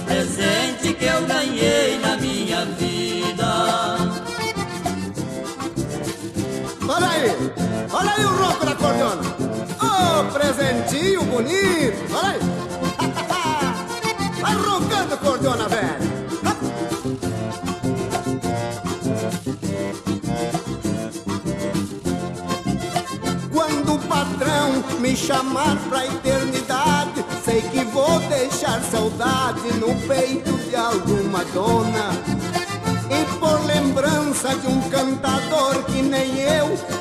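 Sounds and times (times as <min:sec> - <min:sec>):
accordion: 0:00.0 - 0:37.0
bass and chords beat: 0:00.0 - 0:37.0.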